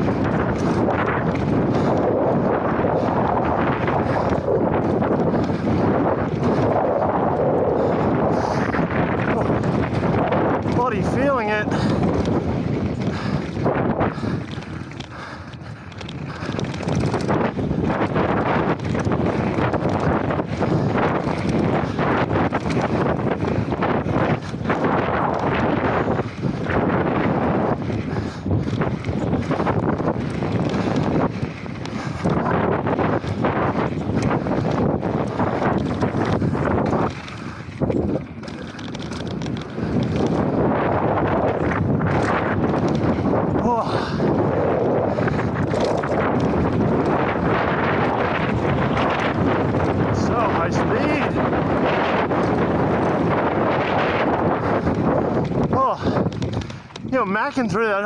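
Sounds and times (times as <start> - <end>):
bike knocking and rattling: 0.0 - 58.0
bike tyres rolling over dirt: 0.0 - 58.0
wind rushing over microphone: 0.0 - 58.0.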